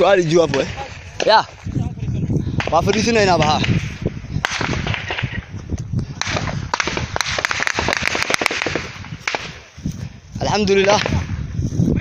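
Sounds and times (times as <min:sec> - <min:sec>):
sharp cracks: 0:00.0 - 0:01.5, 0:02.6 - 0:09.7, 0:10.7 - 0:11.3.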